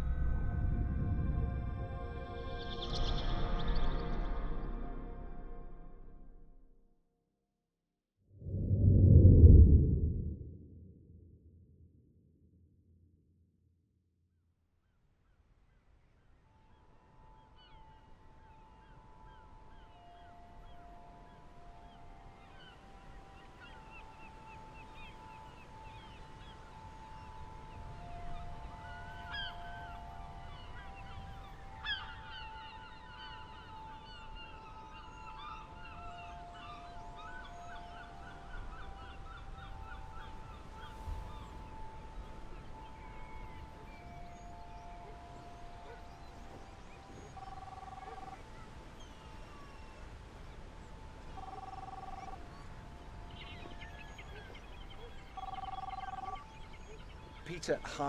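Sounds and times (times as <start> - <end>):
wind and surf rumble: 8.4 - 11.2
birds chirping: 51.2 - 58.0.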